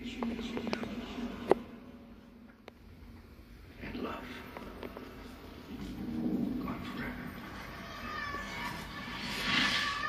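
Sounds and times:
film soundtrack over speakers: 0.0s - 10.0s.

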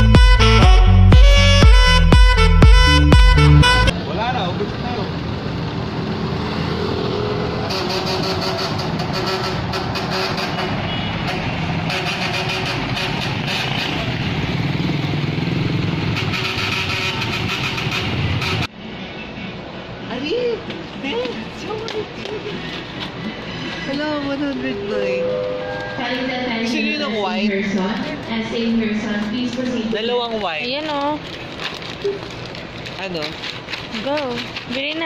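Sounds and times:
saxophone jazz music: 0.0s - 3.9s, 24.7s - 27.6s
city street traffic: 0.0s - 35.0s.

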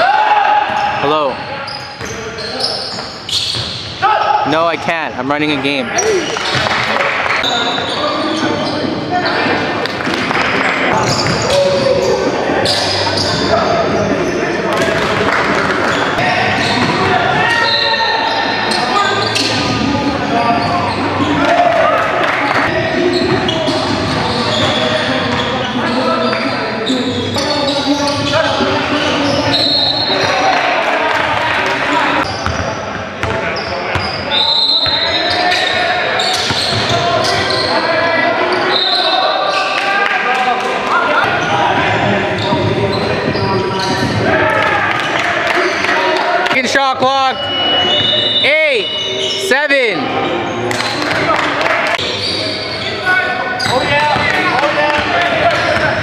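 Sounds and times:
players calling out: 0.0s - 9.8s.

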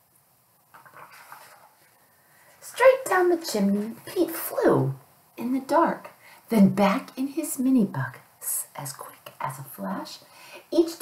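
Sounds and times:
book page rustling: 0.7s - 2.7s.

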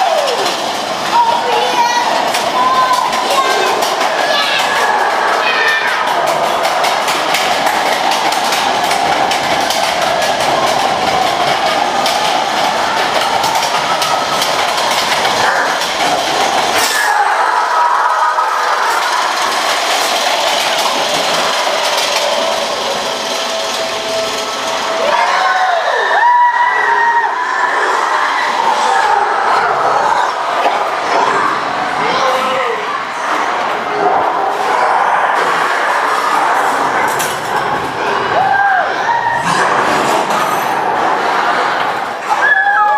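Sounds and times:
ride car rumbling: 0.0s - 42.9s
track clatter: 0.0s - 42.9s.

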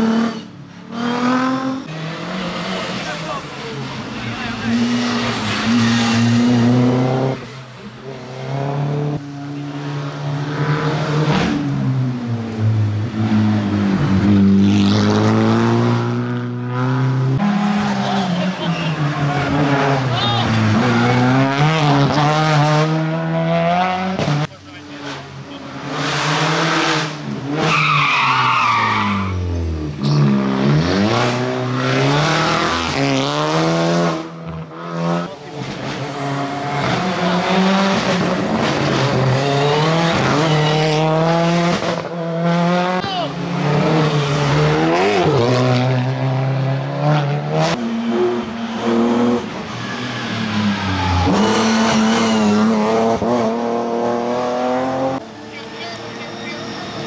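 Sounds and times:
race car engines revving: 0.0s - 57.0s
brief high squeal: 56.2s - 57.0s.

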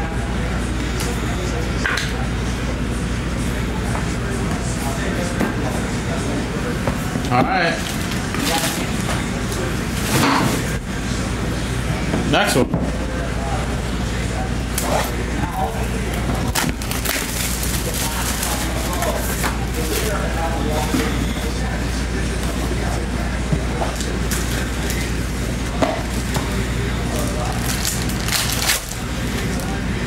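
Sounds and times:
plastic shrink wrap crinkling: 16.1s - 20.2s, 27.1s - 29.8s.

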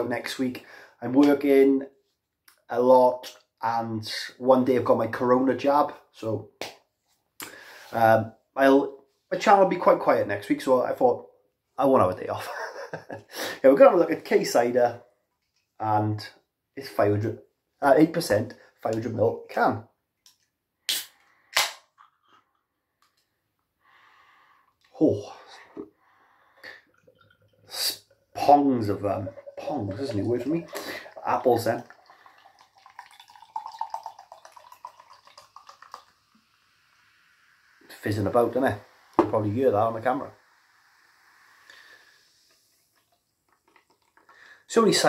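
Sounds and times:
cider fizzing into a glass: 25.3s - 45.0s
bubbles popping: 26.7s - 36.2s.

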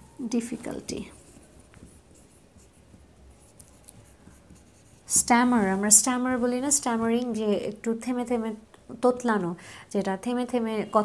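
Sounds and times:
marker scratching on whiteboard: 0.4s - 7.3s.

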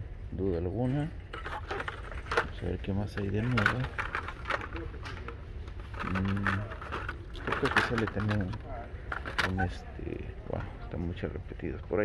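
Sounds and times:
low store background hum: 0.0s - 12.0s
clicks of plastic packaging: 1.3s - 9.6s.

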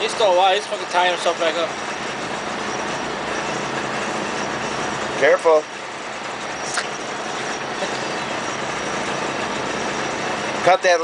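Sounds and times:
boat engine idling: 0.0s - 11.0s.

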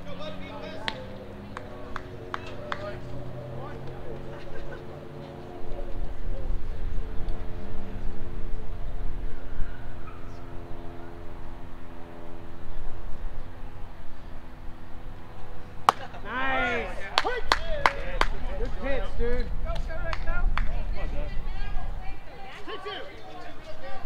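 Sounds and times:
steady low hum: 0.0s - 24.0s
sharp claps: 0.8s - 3.1s, 15.8s - 16.2s, 17.0s - 18.8s, 19.7s - 20.8s
people shouting: 15.9s - 18.9s.

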